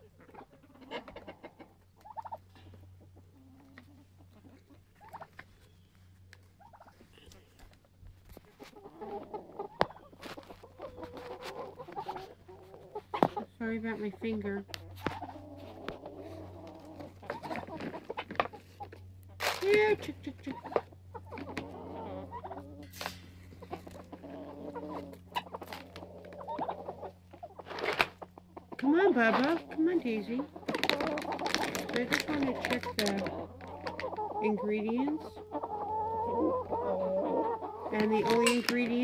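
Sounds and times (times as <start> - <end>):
chickens clucking softly: 0.0 - 39.0
faint steady hum: 0.0 - 39.0
chickens pecking on plastic: 0.2 - 39.0.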